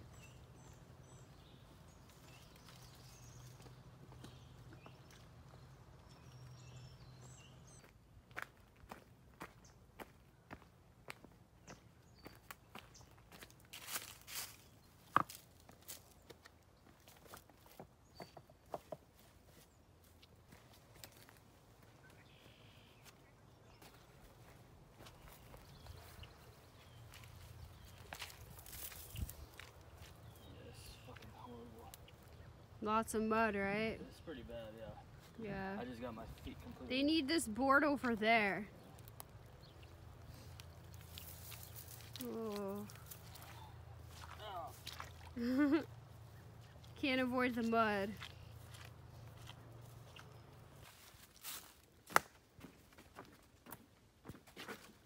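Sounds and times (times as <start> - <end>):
footsteps on leafy muddy trail: 0.0 - 6.8, 7.8 - 18.2, 18.8 - 32.8, 37.8 - 55.0.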